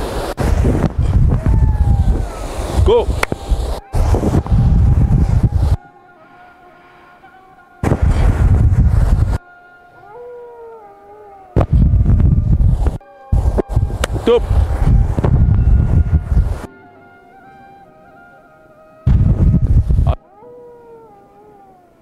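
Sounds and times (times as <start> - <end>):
wind buffeting microphone: 0.0 - 5.8, 7.8 - 9.4, 11.6 - 16.7, 19.1 - 20.2
faint drawn-out tones: 1.6 - 22.0.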